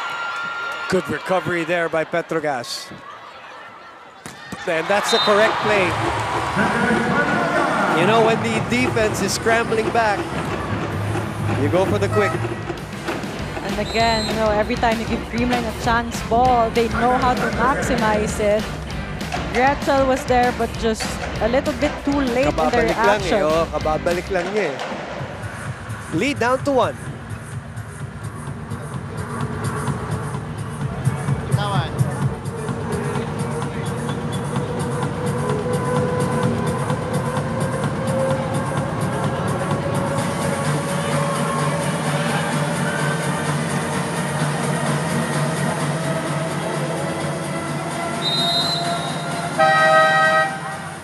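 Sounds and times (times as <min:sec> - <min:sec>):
crowd noise: 0:00.0 - 0:51.0
music over public address: 0:05.2 - 0:51.0.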